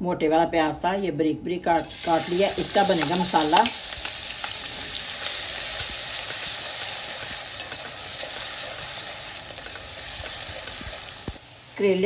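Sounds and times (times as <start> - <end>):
onion sizzling in hot oil: 1.7 - 12.0.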